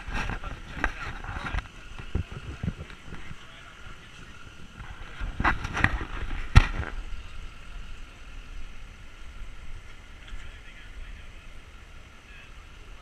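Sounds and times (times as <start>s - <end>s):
traffic rumble: 0.0s - 13.0s
wind: 0.0s - 13.0s.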